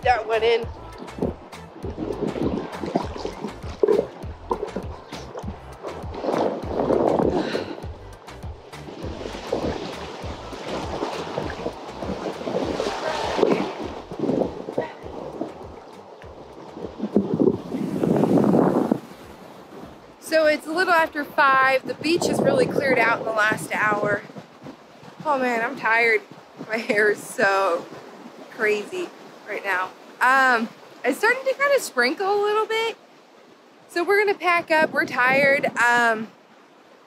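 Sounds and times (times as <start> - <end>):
wind buffeting microphone: 0.0 - 29.4, 34.1 - 36.3
ocean surf and churning water: 0.0 - 37.0.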